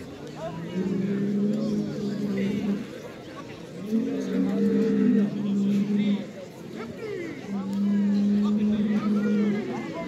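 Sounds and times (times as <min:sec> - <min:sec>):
bull bellowing: 0:07.7 - 0:09.7.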